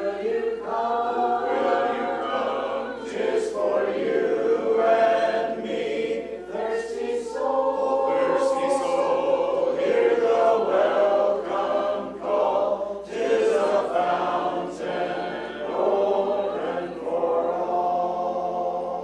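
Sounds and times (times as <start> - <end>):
congregation singing a hymn: 0.0 - 19.0.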